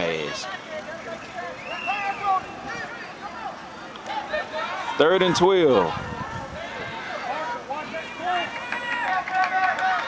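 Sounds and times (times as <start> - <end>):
background murmur: 0.0 - 10.0
distant voices calling out: 0.0 - 10.0.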